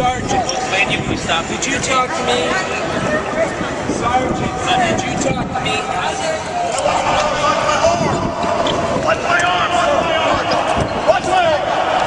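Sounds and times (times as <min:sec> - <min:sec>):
people calling out: 0:05.8 - 0:12.0.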